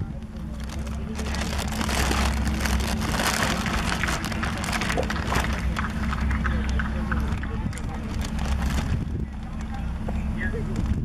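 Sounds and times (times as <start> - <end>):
crackling rustling noise: 0.0 - 10.0
low rumble: 0.0 - 11.0.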